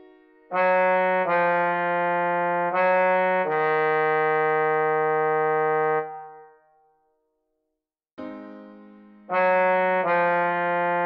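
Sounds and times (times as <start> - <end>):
trombone long low note: 0.5 - 6.5, 9.3 - 11.0.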